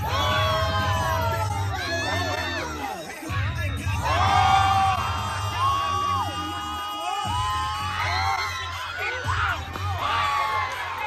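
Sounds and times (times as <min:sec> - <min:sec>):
crowd whooping and yelling: 0:00.0 - 0:11.0
loud dance music with bass: 0:00.0 - 0:11.0.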